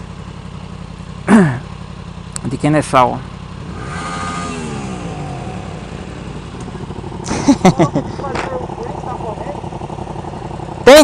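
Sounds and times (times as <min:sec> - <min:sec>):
motorcycle engine slowing: 0:00.0 - 0:11.0
traffic and road noise: 0:00.0 - 0:11.0.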